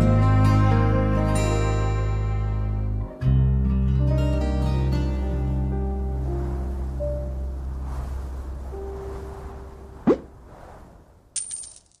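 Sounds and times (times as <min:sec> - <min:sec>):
sharp rising swoop: 0:06.2 - 0:11.2.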